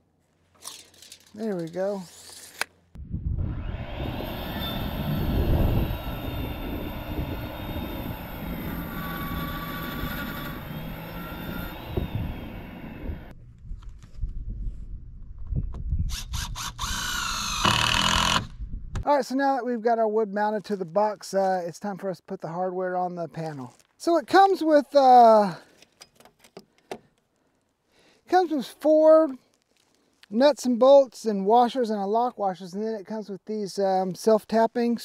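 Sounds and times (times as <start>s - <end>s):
knocks and handling sounds: 0.4s - 2.8s
circular saw cutting wood: 3.4s - 13.3s, 16.1s - 18.5s.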